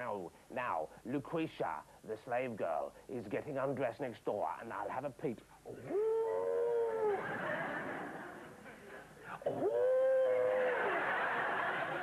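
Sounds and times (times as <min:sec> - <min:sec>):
person's high vocal cry: 0:05.9 - 0:07.3, 0:09.5 - 0:10.8.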